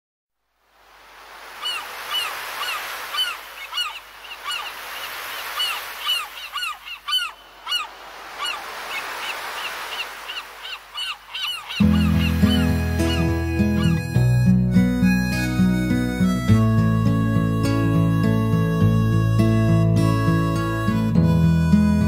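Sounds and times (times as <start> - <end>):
sea noise: 0.4 - 22.0
seagulls calling: 1.5 - 22.0.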